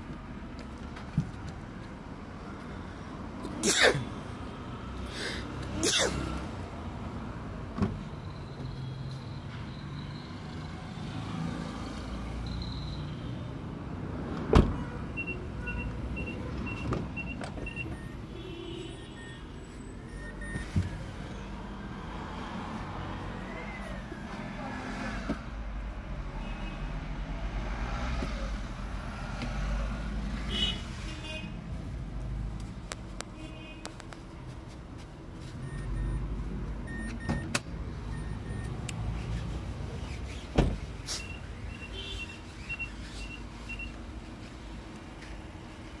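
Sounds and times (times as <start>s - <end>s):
short electronic beeps: 12.4s - 13.2s, 41.2s - 44.0s
car door slamming: 14.5s - 14.8s, 40.5s - 40.9s
car warning chime beeping: 15.2s - 18.2s, 20.1s - 20.7s, 35.6s - 38.8s.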